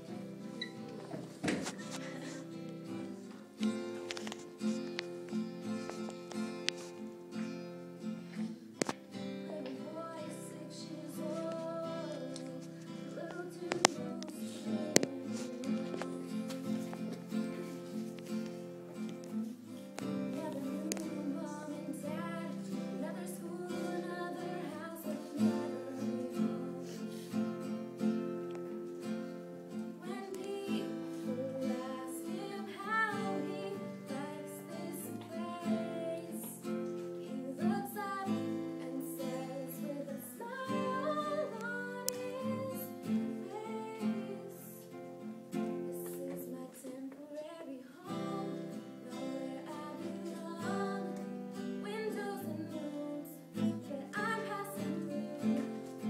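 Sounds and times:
girl singing: 0:00.0 - 0:04.9, 0:09.0 - 0:18.0, 0:19.8 - 0:28.3, 0:29.6 - 0:56.0
acoustic guitar strumming: 0:00.0 - 0:46.9, 0:48.0 - 0:56.0.

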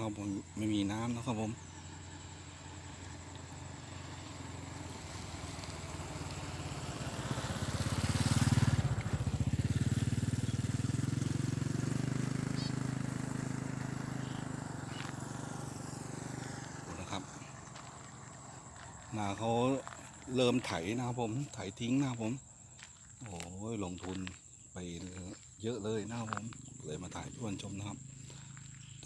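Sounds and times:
motorcycle passing by: 0:00.0 - 0:23.1, 0:25.1 - 0:29.0.

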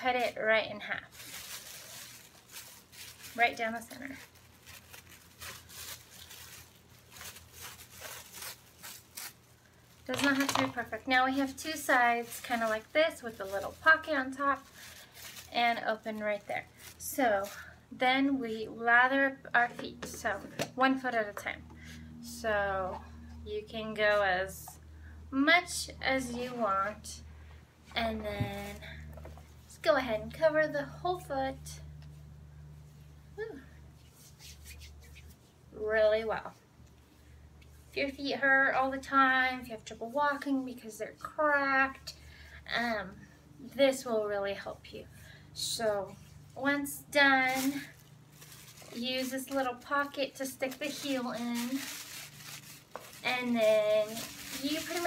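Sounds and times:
plastic bag crinkling: 0:00.1 - 0:17.7, 0:47.4 - 0:55.0
hands rubbing oil on skin: 0:34.0 - 0:35.6.

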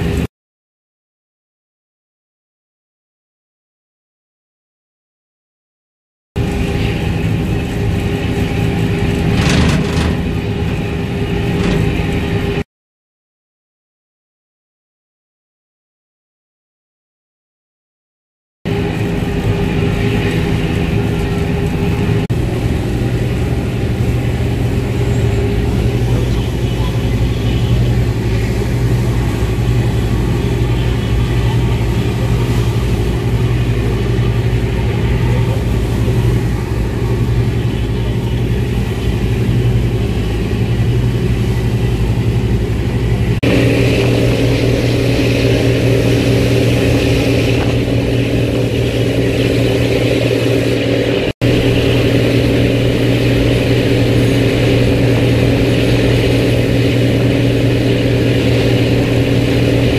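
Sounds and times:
boat engine droning: 0:00.0 - 0:00.3, 0:06.4 - 0:12.7, 0:18.7 - 0:59.9
churning wake rushing: 0:00.0 - 0:00.3, 0:06.4 - 0:12.6, 0:18.7 - 0:59.9.

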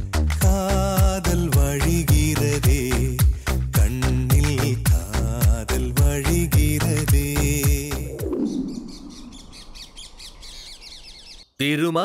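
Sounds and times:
background music: 0:00.0 - 0:08.7
birds chirping: 0:00.0 - 0:12.0.

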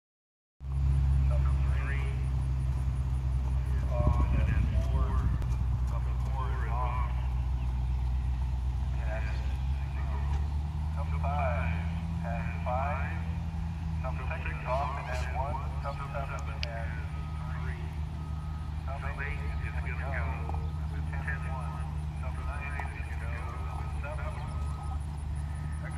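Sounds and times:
engine idling: 0:00.6 - 0:25.9
voices talking: 0:00.7 - 0:25.9.

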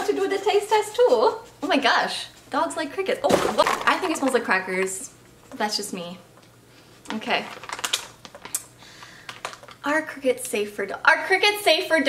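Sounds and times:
plastic pouch crinkling open: 0:07.1 - 0:09.8.

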